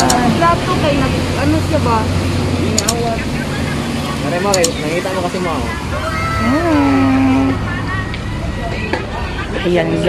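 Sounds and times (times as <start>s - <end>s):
faint talking: 0.0s - 10.0s
steady low rumble: 0.0s - 10.0s
drawn-out pitched voice: 5.0s - 10.0s.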